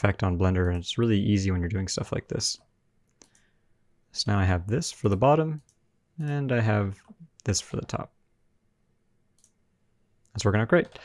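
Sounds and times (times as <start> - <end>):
computer mouse click: 2.6 - 3.5, 9.3 - 9.6.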